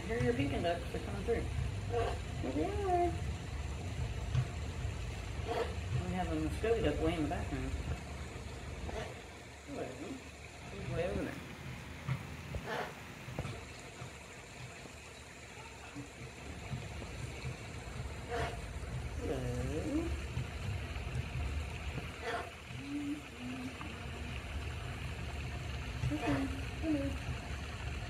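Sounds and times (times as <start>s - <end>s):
low steady rumble: 0.0s - 28.0s
soft voice-like calls: 22.1s - 24.6s, 26.0s - 27.3s.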